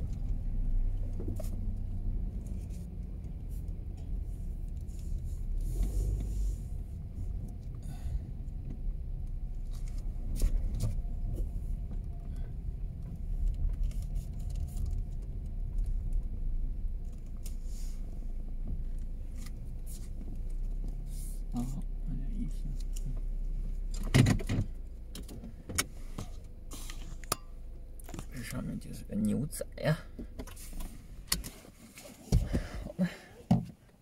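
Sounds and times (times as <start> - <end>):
car engine rumble from inside: 0.0 - 34.0
small clicks and rattles: 8.6 - 17.6.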